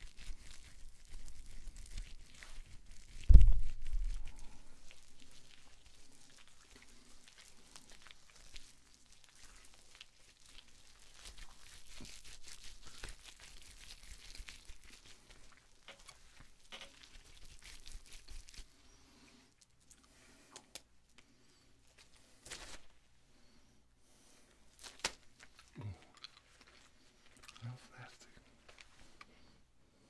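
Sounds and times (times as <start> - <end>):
gloved hands crinkling: 0.0 - 23.1, 24.6 - 29.6.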